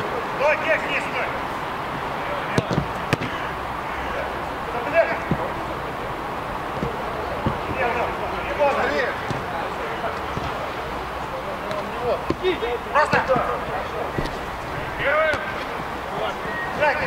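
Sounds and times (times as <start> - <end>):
players shouting: 0.0 - 17.0
ball kicks: 2.5 - 17.0.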